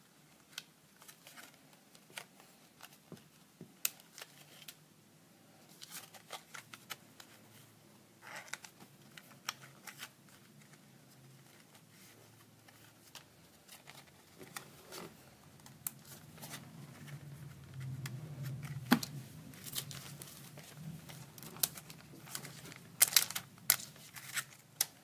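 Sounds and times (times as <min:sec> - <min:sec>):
paper rustling and crinkling: 0:05.7 - 0:25.0.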